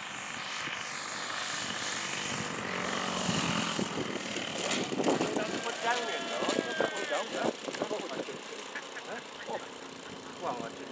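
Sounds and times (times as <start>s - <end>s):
model plane engine and propeller: 0.0s - 10.9s.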